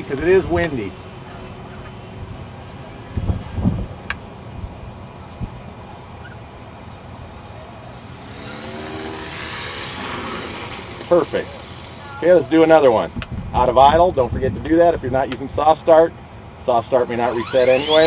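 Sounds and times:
wind buffeting microphone: 0.0s - 5.8s, 12.7s - 15.5s
rotor blades whooshing: 0.0s - 6.2s, 6.8s - 14.0s, 17.2s - 18.0s
thin high whine: 0.0s - 13.9s, 17.2s - 18.0s.

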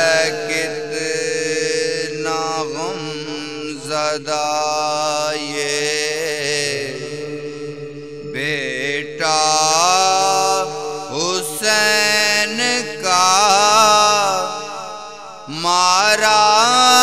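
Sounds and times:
man singing a lament: 0.0s - 17.0s.

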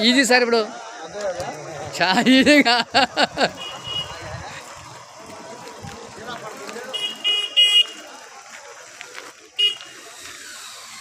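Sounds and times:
people chattering outdoors: 0.0s - 11.0s
vehicle horn beeping: 3.5s - 4.4s, 6.8s - 8.1s, 9.6s - 10.1s.

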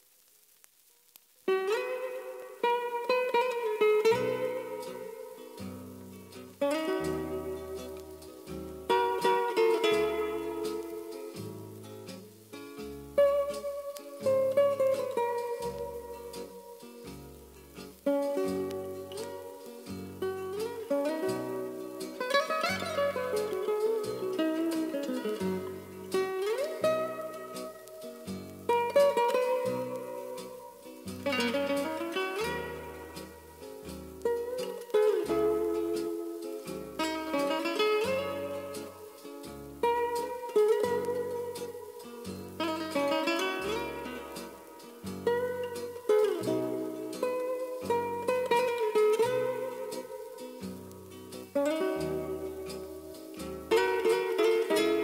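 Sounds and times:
plucked string instrument music: 1.1s - 55.0s.

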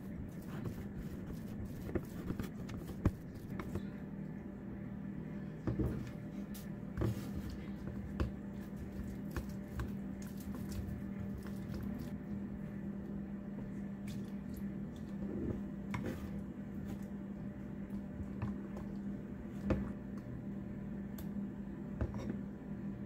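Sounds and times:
wet squelching stirring: 0.0s - 3.8s, 6.0s - 20.4s
steady low hum: 0.0s - 23.0s.

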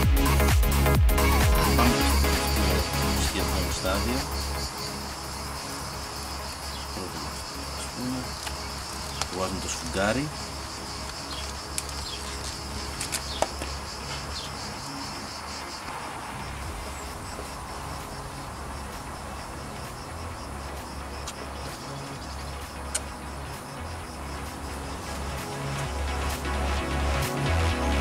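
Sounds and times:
insect chirring: 0.0s - 28.0s
sharp clicks: 11.0s - 13.8s, 22.8s - 23.1s.

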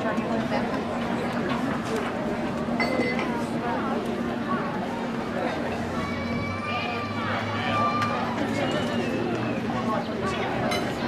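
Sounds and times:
murmur of overlapping voices: 0.0s - 11.0s.

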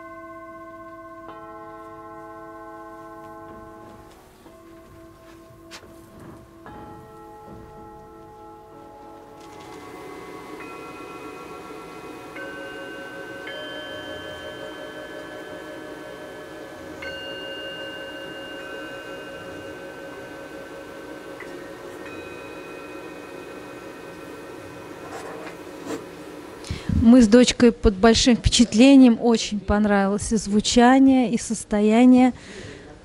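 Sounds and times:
singing bowls ringing: 0.0s - 26.8s.

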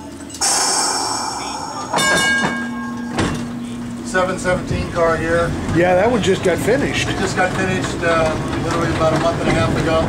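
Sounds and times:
low steady hum: 0.4s - 5.8s
streetcar bell ringing: 0.4s - 9.0s.

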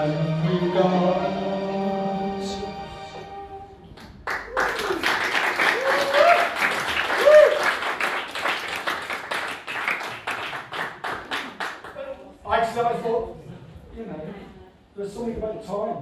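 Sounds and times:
audience applauding: 4.0s - 12.1s.

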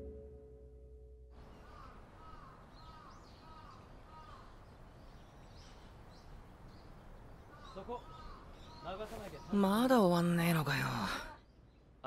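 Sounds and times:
crows cawing: 1.4s - 4.7s, 7.4s - 9.1s.

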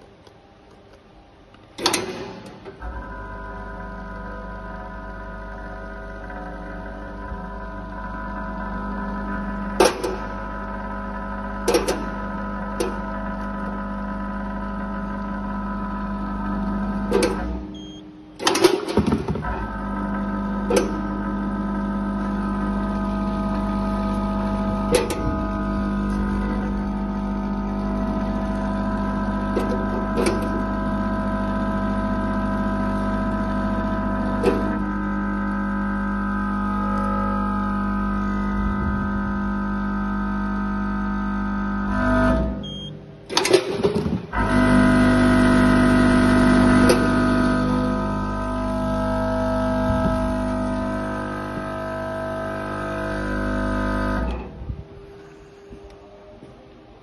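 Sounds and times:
vibratory feeder humming: 2.7s - 43.3s, 44.3s - 56.1s.

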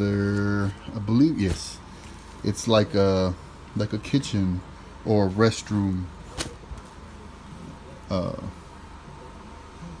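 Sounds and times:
faint handling noise: 0.0s - 3.0s.

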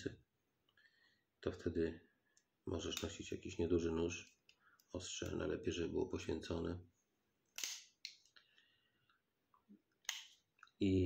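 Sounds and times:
knife snapping open: 7.6s - 8.2s.

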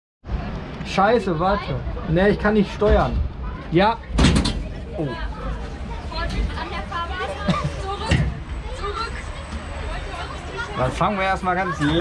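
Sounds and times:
gondola clattering bang: 4.1s - 4.7s.

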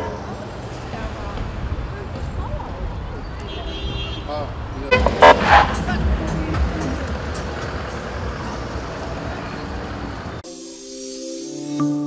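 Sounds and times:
crowd chatter: 0.0s - 10.4s
street noise: 0.0s - 10.7s
vehicle horn blasts: 3.4s - 7.2s.

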